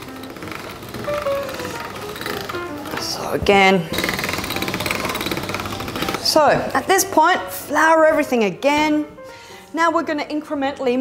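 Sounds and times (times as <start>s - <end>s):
pasta machine gears rattling: 0.0s - 6.2s
background music: 0.0s - 11.0s.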